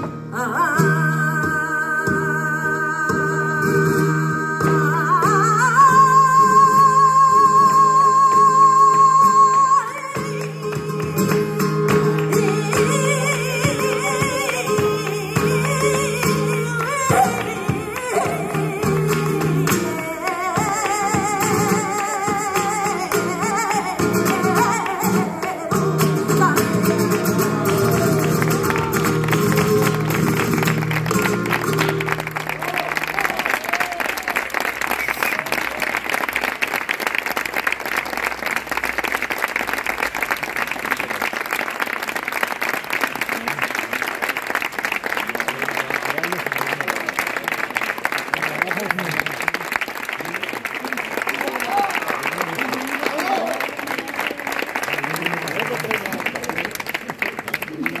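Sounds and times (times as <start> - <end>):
flamenco guitar and voice: 0.0 - 36.0
audience applauding: 4.4 - 58.0.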